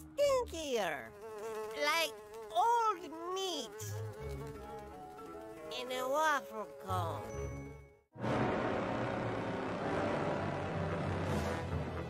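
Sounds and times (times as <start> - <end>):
cartoon flies buzzing: 0.8 - 7.2.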